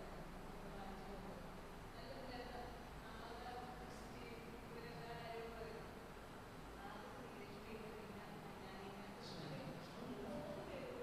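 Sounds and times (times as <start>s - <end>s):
faint buzzing hum: 0.0s - 11.0s.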